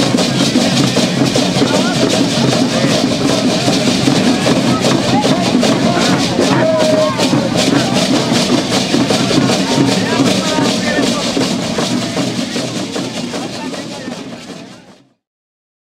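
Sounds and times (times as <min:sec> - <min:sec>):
hand drums beating: 0:00.0 - 0:15.0
leg rattles shaking: 0:00.0 - 0:15.0
people talking nearby: 0:00.0 - 0:15.2.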